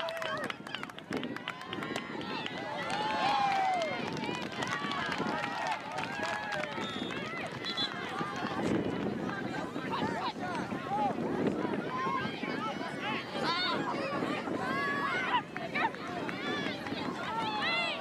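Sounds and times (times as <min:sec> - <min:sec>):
people calling and shouting: 0:00.0 - 0:18.0.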